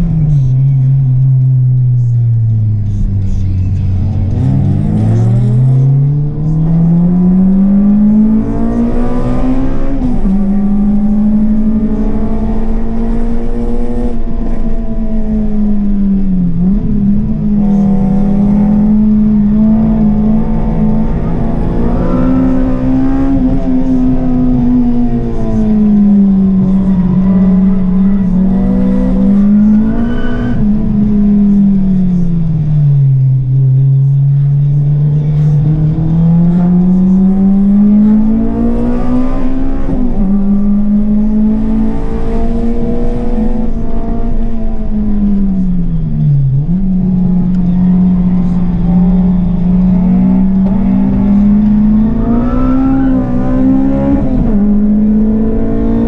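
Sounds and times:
car engine revving under load: 0.0s - 56.0s.

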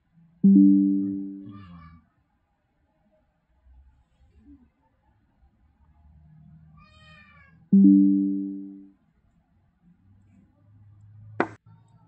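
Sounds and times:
faint wavering high-pitched sound: 0.4s - 1.5s.

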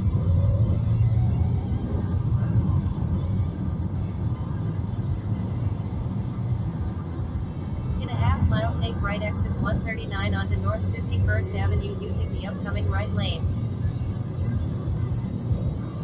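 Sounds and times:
car road and engine noise: 0.0s - 16.0s
voices: 8.0s - 15.8s.

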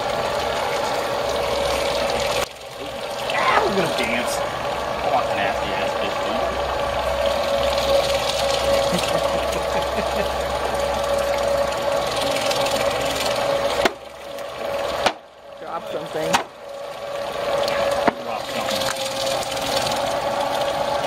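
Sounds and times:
meat grinder motor humming: 0.0s - 21.0s.

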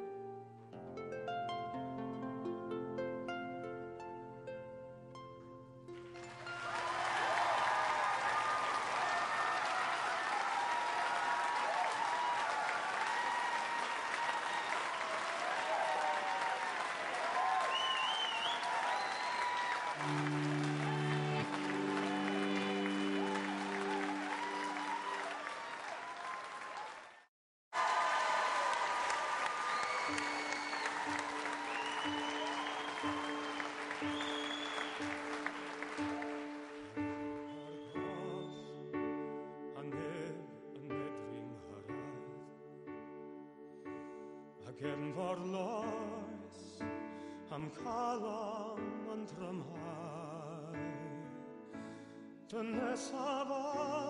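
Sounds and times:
audience applauding and cheering: 6.0s - 38.7s
whistles: 17.4s - 20.3s, 21.6s - 25.2s, 29.6s - 36.4s, 37.0s - 38.9s
held musical notes: 20.0s - 25.2s.

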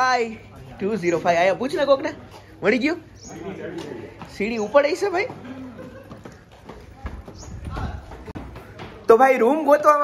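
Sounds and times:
footsteps on tiled steps: 0.0s - 10.0s.

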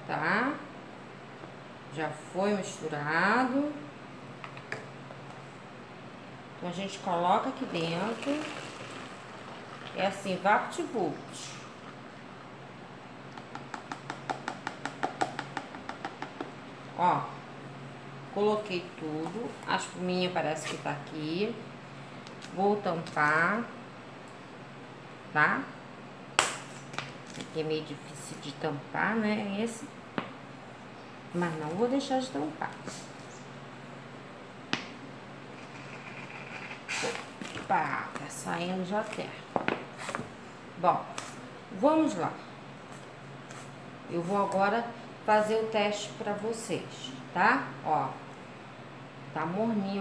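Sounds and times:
room noise: 0.0s - 48.4s.

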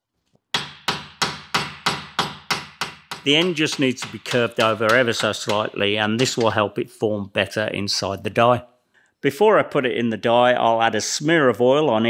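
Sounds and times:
hammer striking steel: 0.6s - 6.7s.

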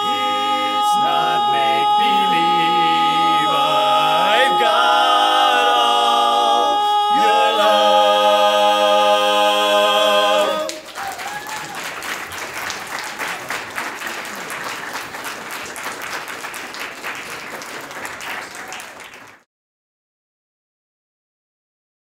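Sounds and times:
barbershop quartet singing: 0.0s - 10.9s
audience applauding: 10.1s - 19.4s.

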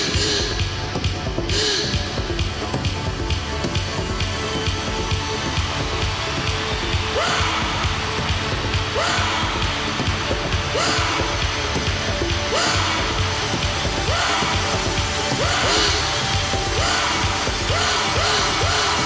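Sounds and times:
rising yell: 6.7s - 11.6s, 12.2s - 19.0s.

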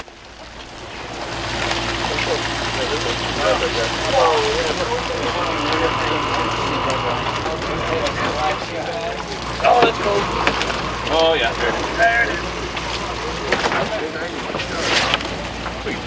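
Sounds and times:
engine and deck machinery running: 0.0s - 16.0s
steady high whine: 0.0s - 16.0s.

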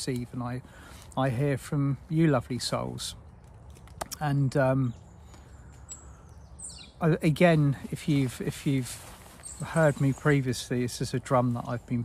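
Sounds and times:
high bird chirp: 4.2s - 7.0s.

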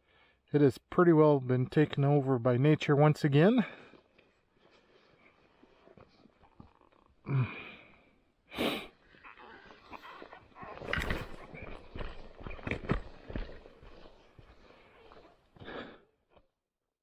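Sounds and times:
footsteps on gravel: 9.2s - 15.9s
loud breaths: 13.2s - 16.2s.

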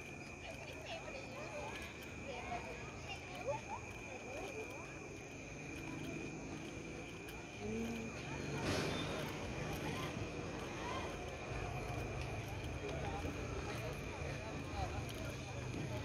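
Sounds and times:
distant voices chatting: 0.0s - 16.0s.

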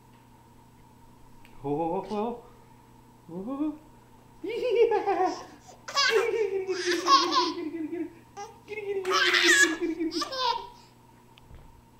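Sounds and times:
baby laughing: 4.5s - 10.8s.

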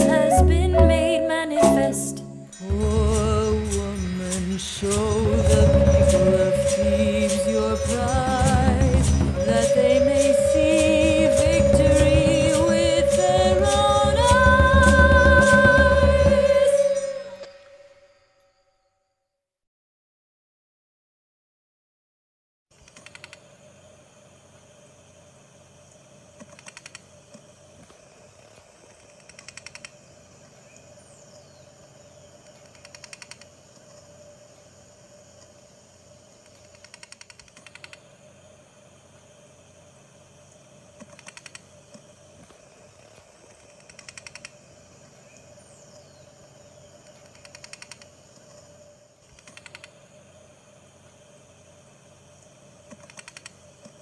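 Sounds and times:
steady hum: 0.0s - 18.3s, 37.9s - 54.0s
faint falling whistle: 0.0s - 19.2s
rapid rattling clicks: 41.0s - 42.0s, 52.9s - 54.0s.

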